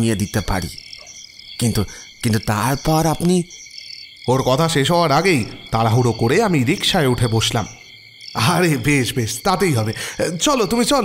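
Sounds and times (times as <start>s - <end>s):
man speaking: 0.0s - 0.8s, 1.6s - 3.6s, 4.3s - 7.8s, 8.4s - 11.0s
crickets chirping: 0.0s - 11.0s.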